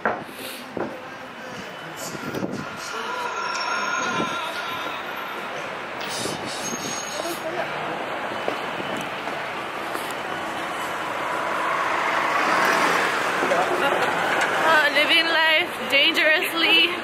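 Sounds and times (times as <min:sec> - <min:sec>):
street traffic hum: 0:00.0 - 0:17.0
vehicle approaching: 0:07.5 - 0:15.8.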